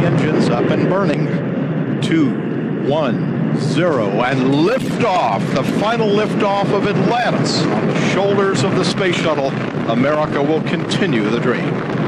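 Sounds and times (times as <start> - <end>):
rocket engines roaring: 0.0 - 12.0.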